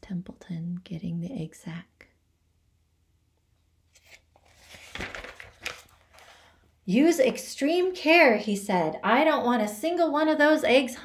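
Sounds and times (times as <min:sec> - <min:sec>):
book pages rustling: 0:03.9 - 0:06.5.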